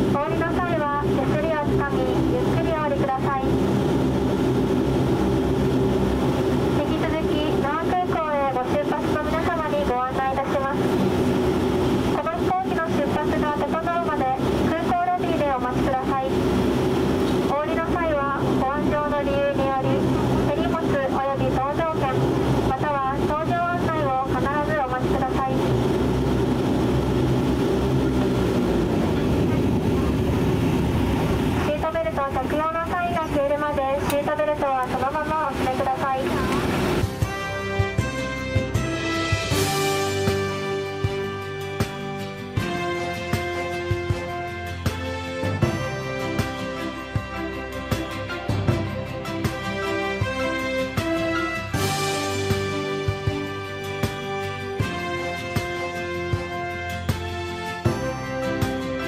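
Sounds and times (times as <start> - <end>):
turboprop engines droning: 0.0 - 59.0.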